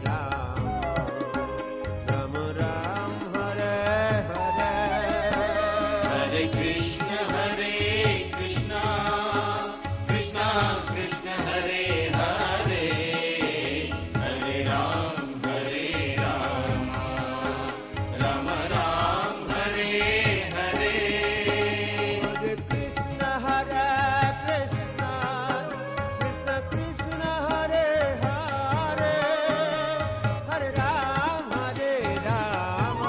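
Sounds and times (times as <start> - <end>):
steady percussion beat: 0.0 - 33.0
voices chanting a mantra: 5.5 - 22.6.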